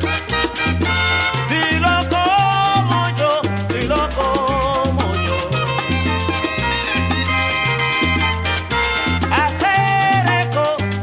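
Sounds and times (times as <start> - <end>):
salsa music: 0.0 - 11.0.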